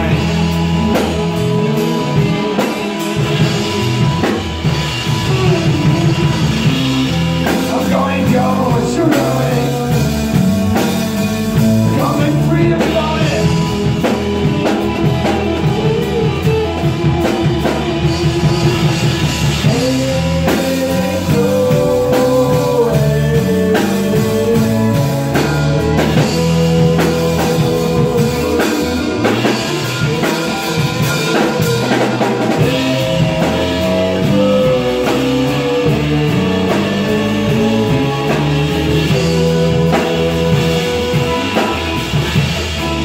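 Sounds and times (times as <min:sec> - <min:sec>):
bass guitar: 0:00.0 - 0:43.0
drum kit: 0:00.0 - 0:43.0
electric guitar: 0:00.0 - 0:43.0
keyboards: 0:00.0 - 0:43.0.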